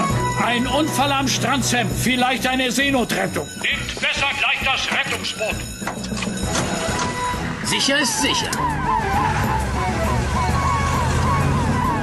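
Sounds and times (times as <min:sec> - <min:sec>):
fire engine siren yelping: 0:06.8 - 0:12.0.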